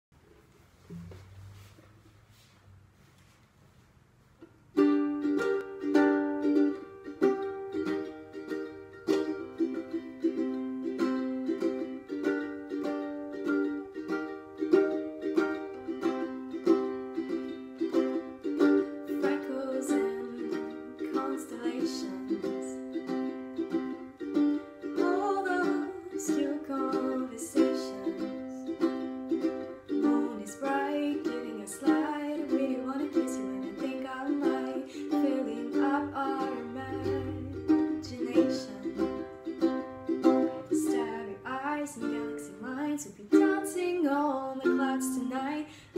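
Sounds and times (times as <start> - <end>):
ukulele strumming: 4.4 - 45.9
woman singing: 18.8 - 23.2, 24.8 - 28.8, 29.9 - 39.3, 40.2 - 45.9.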